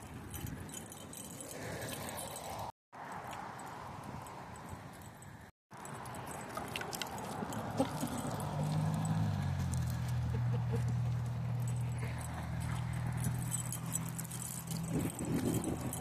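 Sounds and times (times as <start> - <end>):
chain leash jingling: 0.0 - 16.0.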